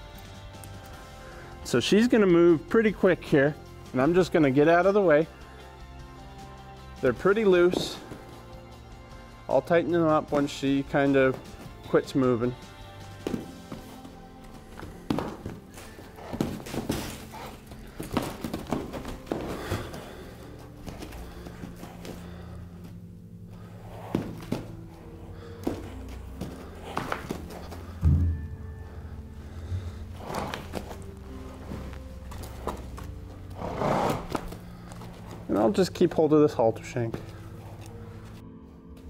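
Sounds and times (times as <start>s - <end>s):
background music: 0.0s - 39.0s
hooves thudding in sand: 6.2s - 23.0s, 23.6s - 38.4s.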